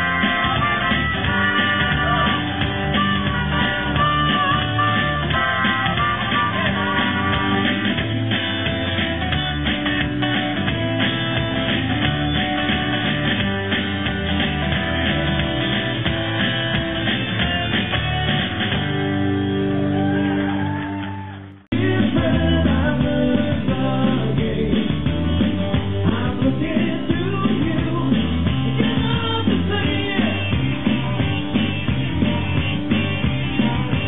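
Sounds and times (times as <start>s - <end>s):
acoustic guitar strumming: 0.0s - 19.8s
bass guitar: 0.0s - 34.0s
drums: 0.0s - 34.0s
electric guitar: 0.0s - 34.0s.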